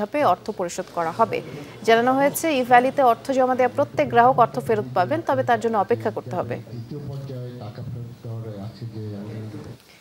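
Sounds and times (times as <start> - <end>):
man talking into microphones: 3.7 - 9.8.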